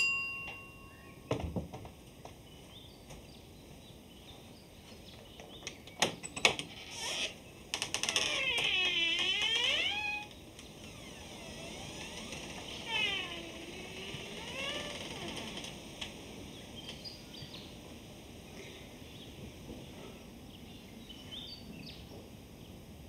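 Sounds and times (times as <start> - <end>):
door hinges creaking: 6.0 - 16.3.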